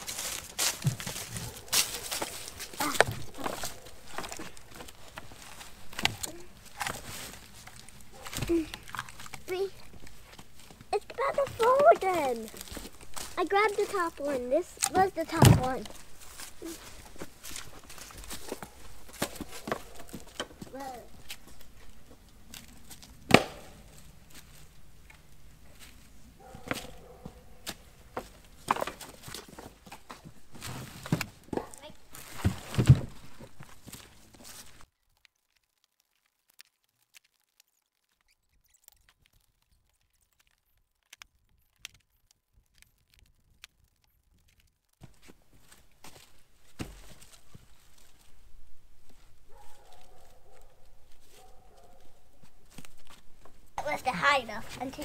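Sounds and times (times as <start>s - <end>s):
footsteps: 0.0s - 34.9s, 44.4s - 55.0s
firewood knocking: 0.6s - 1.6s, 23.3s - 23.8s.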